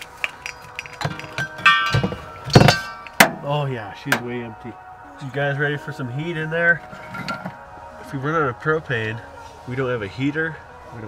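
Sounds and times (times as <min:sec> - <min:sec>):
gas cylinder knocking: 0:01.0 - 0:03.4
ringing metallic clank: 0:01.0 - 0:03.5.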